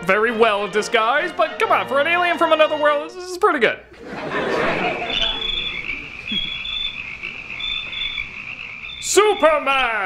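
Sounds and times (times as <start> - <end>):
frogs croaking: 4.6 - 10.0
crickets chirping: 4.7 - 10.0.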